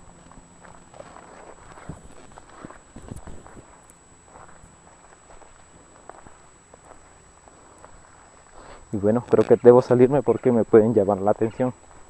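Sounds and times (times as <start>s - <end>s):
footsteps on dirt and dry grass: 0.0s - 10.6s, 11.8s - 12.0s.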